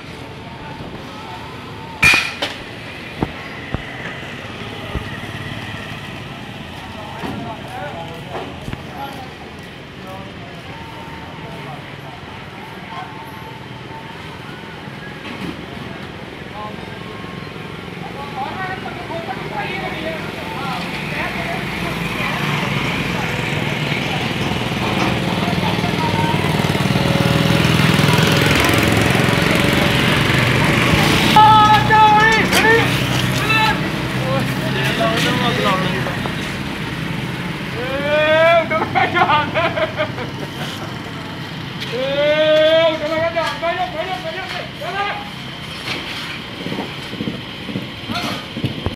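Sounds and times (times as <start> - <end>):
motorcycles passing: 0.0 - 10.2, 17.7 - 48.8
people's voices: 0.0 - 48.9
street traffic: 0.0 - 48.9.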